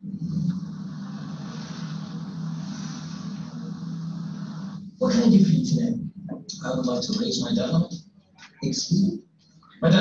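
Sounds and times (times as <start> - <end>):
low hum from speakers: 0.0 - 10.0
hiss: 0.7 - 4.8.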